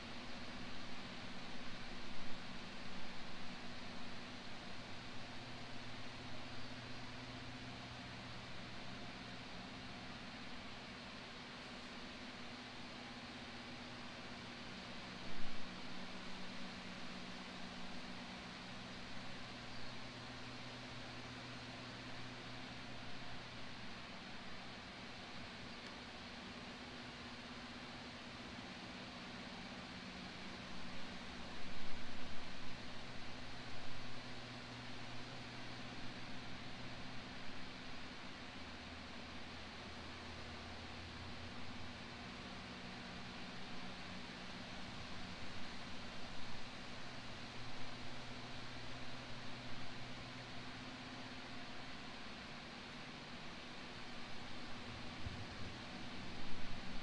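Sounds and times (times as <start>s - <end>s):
faint outdoor noise: 0.0s - 57.0s.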